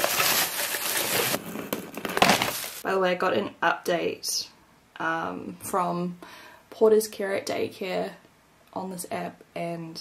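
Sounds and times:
crinkled paper rustling: 0.0 - 2.8.

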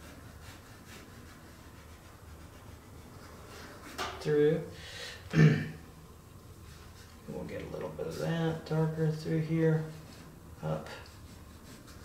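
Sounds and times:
pencil scratching on paper: 0.0 - 4.3, 9.7 - 12.0
low room hum: 0.0 - 12.0.

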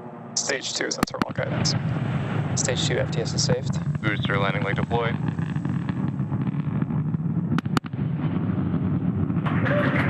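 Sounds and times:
rocket engine roaring: 0.0 - 10.0
sharp cracks: 2.6 - 10.0.

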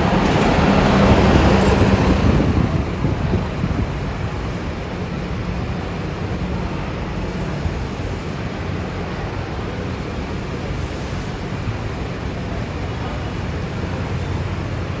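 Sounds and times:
bus passing by: 0.0 - 15.0.

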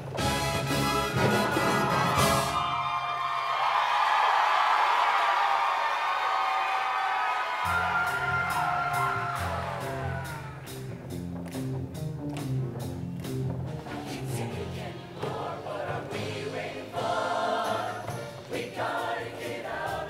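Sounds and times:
bass line: 7.7 - 16.5.

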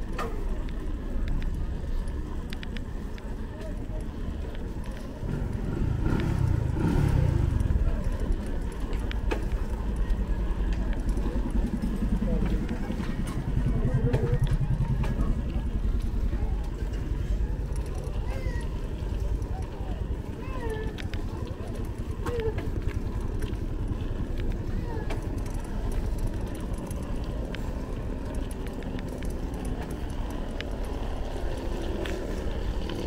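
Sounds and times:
people's voices: 0.0 - 33.0
steady low rumble: 0.0 - 33.0
motorbike engine passing: 4.8 - 33.0.

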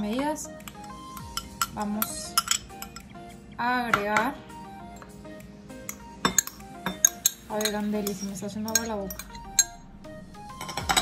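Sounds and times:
background music: 0.0 - 11.0
spoon clinking glass bowl: 0.7 - 3.1, 5.8 - 9.8.

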